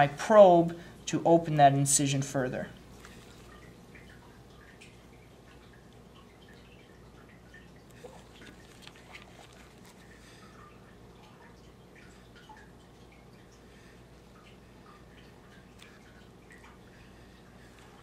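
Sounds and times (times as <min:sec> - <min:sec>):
faint room hum: 0:00.0 - 0:18.0.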